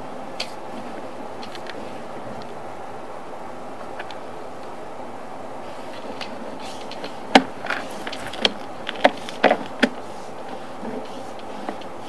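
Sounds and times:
steady background noise: 0.0s - 12.0s
sharp knocks and clicks in pipe: 6.2s - 10.0s.

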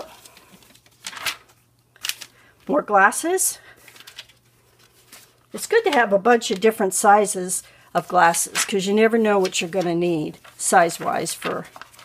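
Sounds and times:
magazine page turning: 0.0s - 2.4s, 3.8s - 6.8s, 8.1s - 12.0s.

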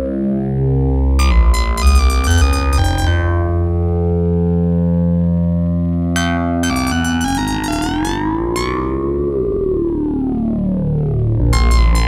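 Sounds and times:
synthesizer holding low note: 0.0s - 12.0s.

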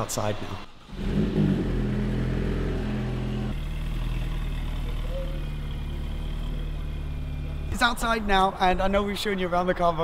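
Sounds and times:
car engine idling: 0.8s - 7.8s.

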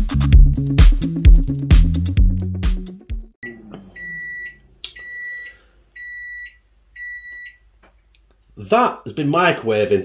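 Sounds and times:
microwave oven beeping: 3.4s - 7.6s.

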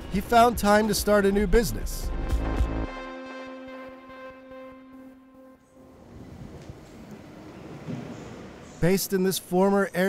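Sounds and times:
held music chord: 1.4s - 7.8s
faint noisy ambience: 5.6s - 10.0s.

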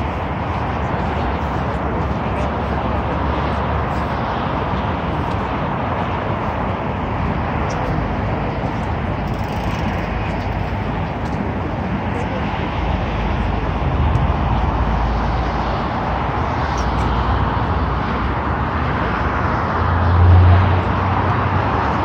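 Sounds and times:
expressway traffic hiss and rumble: 0.0s - 22.0s.

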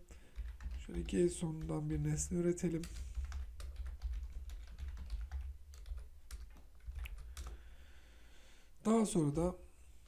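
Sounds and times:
computer keyboard typing: 0.3s - 7.6s.

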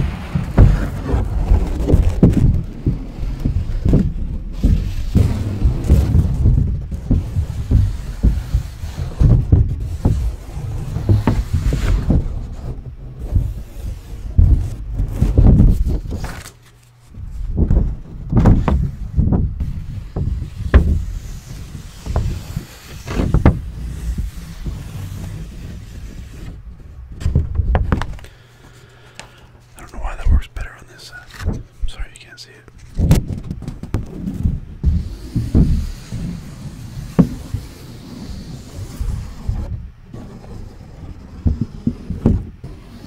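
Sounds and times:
low thumps: 0.0s - 16.2s
paper rubbing and crackling: 0.0s - 43.0s
paper rustling: 15.0s - 17.0s
close whispering: 29.7s - 32.8s.

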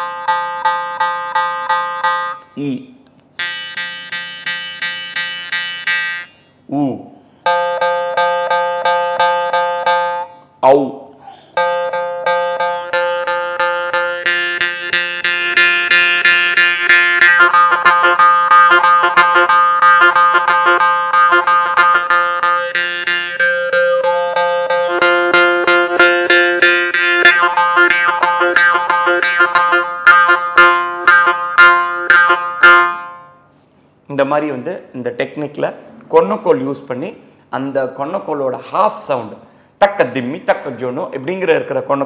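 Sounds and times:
jaw harp played rhythmically: 0.0s - 2.7s, 3.4s - 6.7s, 7.3s - 10.6s, 11.3s - 33.4s.

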